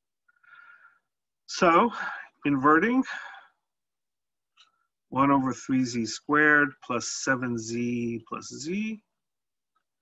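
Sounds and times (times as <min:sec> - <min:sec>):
man speaking breathily: 0:01.5 - 0:03.7.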